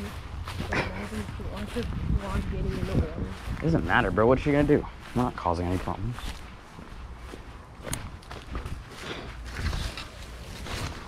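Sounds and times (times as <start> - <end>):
feet rustling dry leaves: 0.0 - 11.0
footsteps on paver stones: 0.0 - 11.0.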